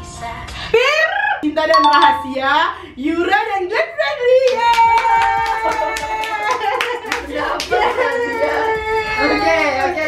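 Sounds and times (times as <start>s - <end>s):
held high note: 1.7s - 2.9s
hand claps: 4.5s - 8.3s.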